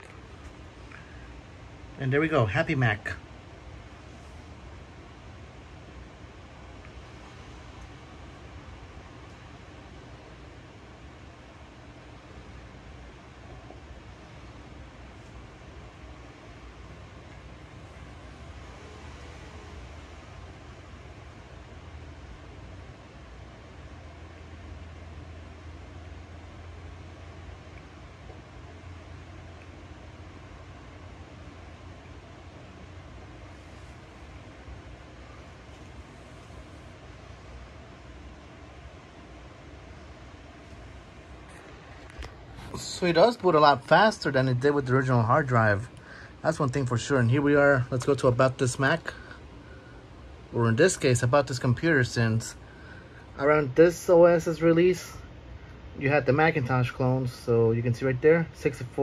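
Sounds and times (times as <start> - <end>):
background hiss: 0.0 - 59.0
low hum: 0.0 - 59.0.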